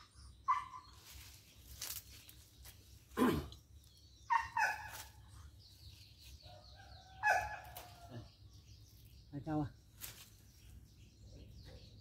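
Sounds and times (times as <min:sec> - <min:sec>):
small birds chirping: 0:00.0 - 0:12.0
dog barking: 0:04.3 - 0:04.9.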